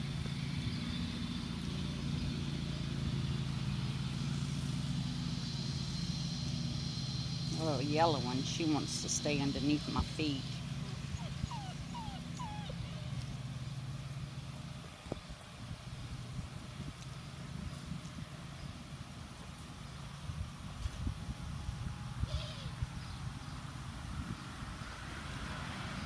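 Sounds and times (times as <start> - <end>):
steady low hum: 0.0 - 25.0
puppies whimpering yips: 11.1 - 13.4, 22.3 - 22.8
wind rumble on microphone: 14.8 - 26.0.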